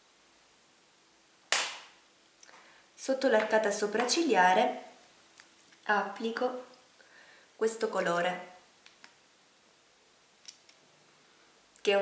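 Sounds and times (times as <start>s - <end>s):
woman speaking: 3.0s - 5.0s, 5.8s - 6.7s, 7.6s - 8.6s.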